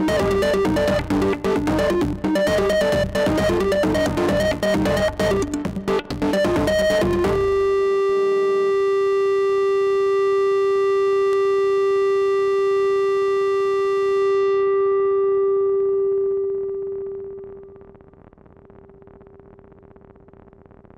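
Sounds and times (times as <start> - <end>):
synthesizer rhythmic pattern: 0.0 - 7.8
synthesizer drone note: 0.0 - 8.4.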